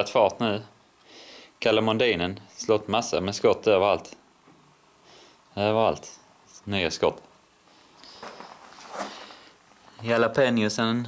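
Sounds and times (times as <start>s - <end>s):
soft footsteps: 7.8s - 10.0s.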